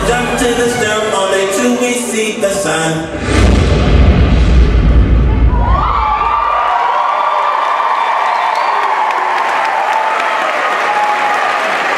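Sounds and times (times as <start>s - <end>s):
audience cheering and applauding: 5.3s - 11.9s.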